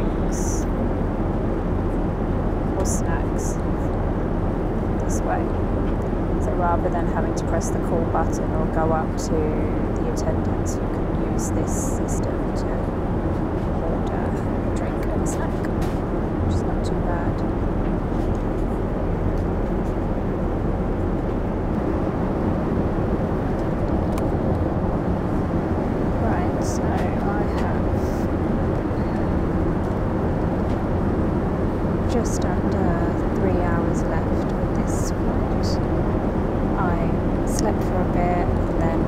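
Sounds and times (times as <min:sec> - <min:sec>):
airplane cabin engine rush: 0:00.0 - 0:39.0.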